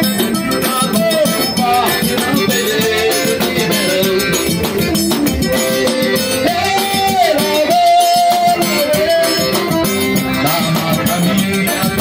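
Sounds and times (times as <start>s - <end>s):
bass drum beaten with stick: 0.0s - 12.0s
man singing: 0.0s - 12.0s
piano accordion: 0.0s - 12.0s
small hand drum: 0.0s - 12.0s.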